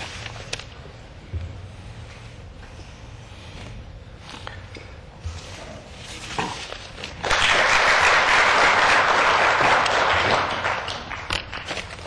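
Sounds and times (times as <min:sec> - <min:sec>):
people applauding: 0:07.2 - 0:12.0.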